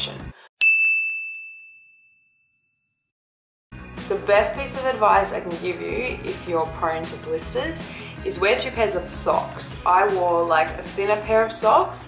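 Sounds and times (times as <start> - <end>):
bright bell ding: 0.6 - 2.7.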